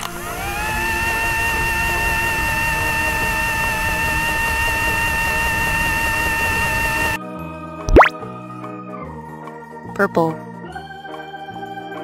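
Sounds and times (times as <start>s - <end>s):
microwave oven humming: 0.0s - 7.2s.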